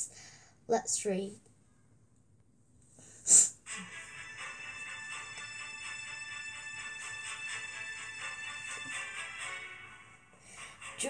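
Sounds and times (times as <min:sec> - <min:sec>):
background music: 0:03.6 - 0:11.0.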